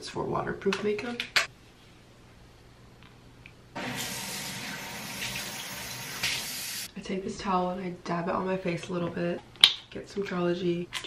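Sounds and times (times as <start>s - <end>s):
faucet running into sink: 3.8s - 6.9s.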